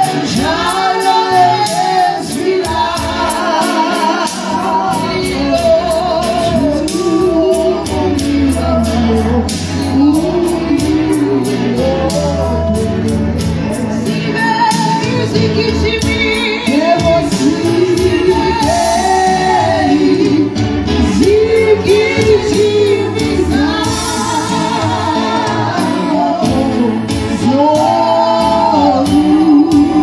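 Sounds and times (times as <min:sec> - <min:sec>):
gospel singing with accompaniment: 0:00.0 - 0:30.0
steady beat: 0:00.0 - 0:30.0.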